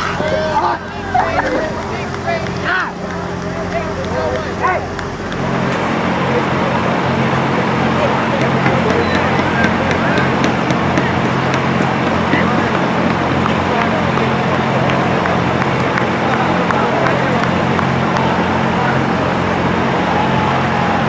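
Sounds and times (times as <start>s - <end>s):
crowd cheering and shouting: 0.0s - 21.0s
low engine hum: 0.0s - 21.0s.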